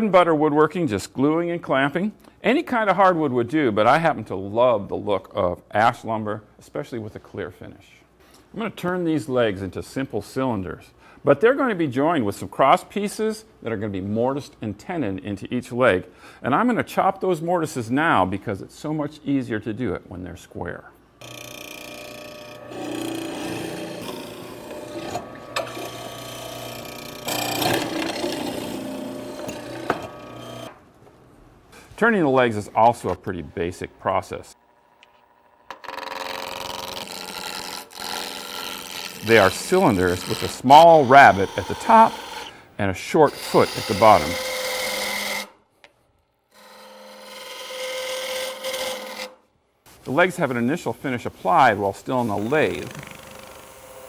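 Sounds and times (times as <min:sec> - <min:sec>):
lathe tool scraping wood: 0:21.2 - 0:30.8, 0:35.0 - 0:45.5, 0:46.5 - 0:49.4, 0:51.4 - 0:54.0
mortiser motor boring wood: 0:21.2 - 0:30.8, 0:35.7 - 0:42.5, 0:43.3 - 0:45.5, 0:52.3 - 0:54.0
wood lathe humming: 0:21.2 - 0:30.8, 0:34.6 - 0:45.5, 0:46.5 - 0:49.3, 0:52.0 - 0:54.0.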